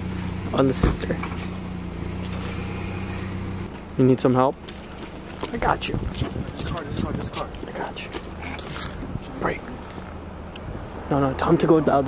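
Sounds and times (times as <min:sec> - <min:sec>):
car engine idling: 0:00.0 - 0:11.4.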